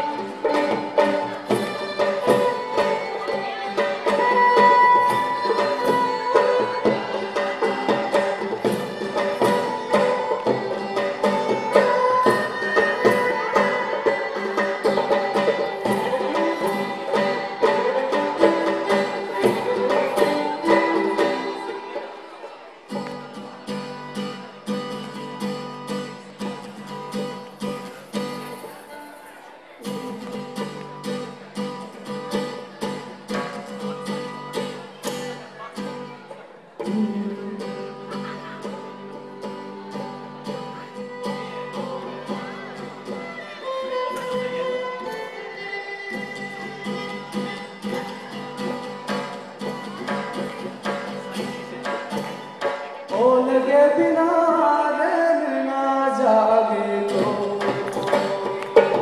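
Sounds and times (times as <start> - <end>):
hand percussion beat: 0.0 - 22.3, 46.1 - 53.3, 57.1 - 59.0
violin melody: 0.0 - 22.8, 38.4 - 50.5
acoustic guitar: 0.0 - 59.0.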